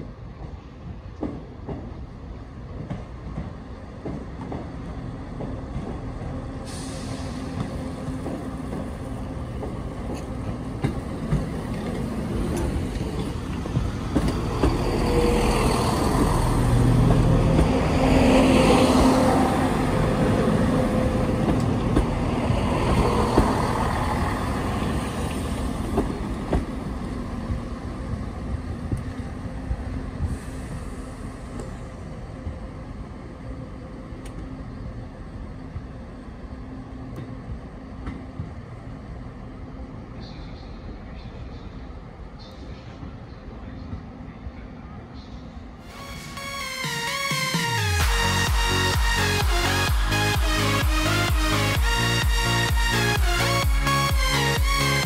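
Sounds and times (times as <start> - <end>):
diesel train passing: 0.0 - 55.0.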